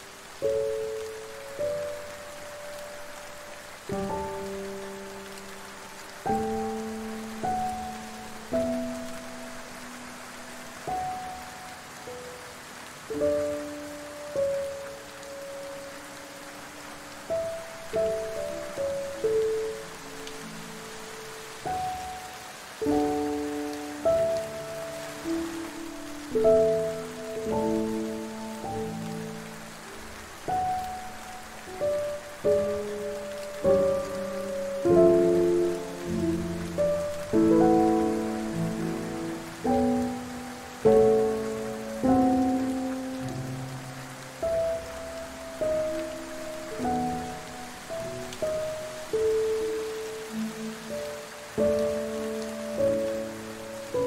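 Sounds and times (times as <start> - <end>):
rain hissing: 0.0 - 54.0
soft piano music: 0.0 - 54.0.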